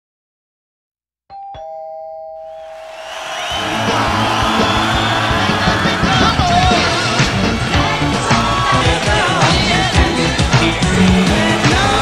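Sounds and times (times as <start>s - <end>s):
two-tone doorbell chime: 1.3s - 2.9s
upbeat music with steady beat: 3.0s - 12.0s.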